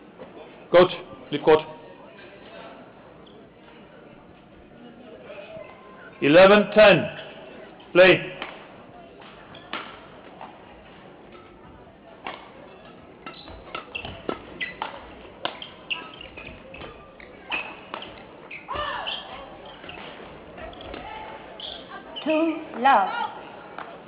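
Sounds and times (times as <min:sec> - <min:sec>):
shoes squeaking on court: 0:07.1 - 0:23.6
rackets hitting shuttlecock: 0:08.3 - 0:21.9.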